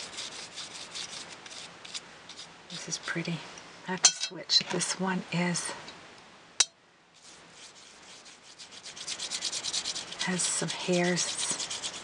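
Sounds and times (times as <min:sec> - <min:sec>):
paintbrush scrubbing on cardstock: 0:00.0 - 0:03.2, 0:07.2 - 0:12.0.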